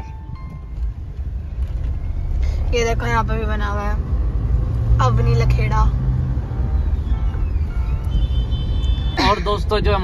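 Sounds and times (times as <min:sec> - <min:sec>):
car engine and tyre rumble: 0:00.0 - 0:10.0.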